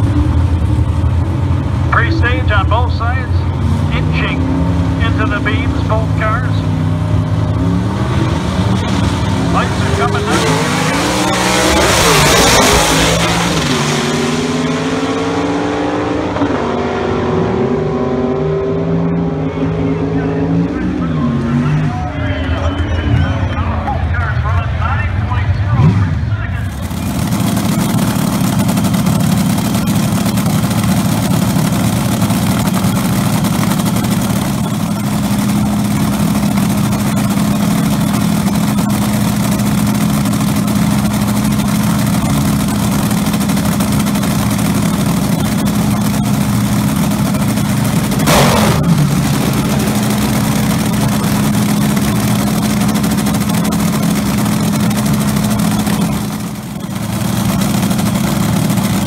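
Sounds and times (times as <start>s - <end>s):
loud engine idling: 0.0s - 59.0s.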